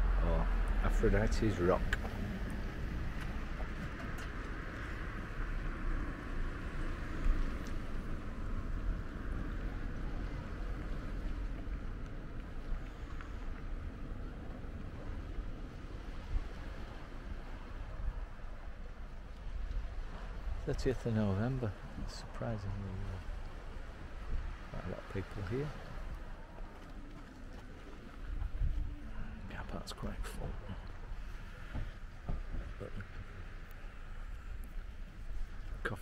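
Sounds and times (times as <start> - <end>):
wind buffeting microphone: 0.0 - 33.4.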